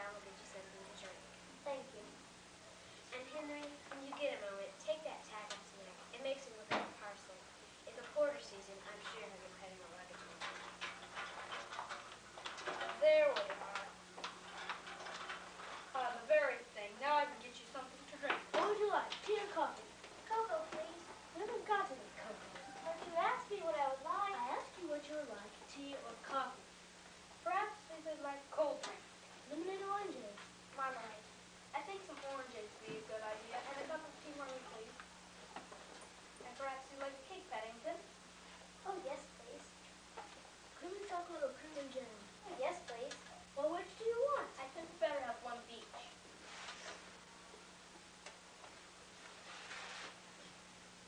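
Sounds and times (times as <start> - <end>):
child speaking: 0.0 - 2.2, 3.0 - 10.5, 12.7 - 14.0, 15.9 - 26.7, 27.4 - 35.0, 36.4 - 38.1, 38.8 - 39.8, 40.8 - 46.2
steady low hum: 0.0 - 51.0.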